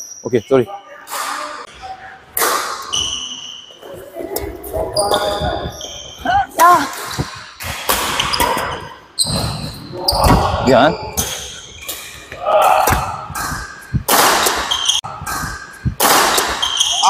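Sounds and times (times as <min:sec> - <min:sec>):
rackets hitting shuttlecock: 0:02.4 - 0:03.2, 0:11.2 - 0:17.0
sneakers squeaking on court: 0:02.8 - 0:03.8, 0:04.4 - 0:17.0.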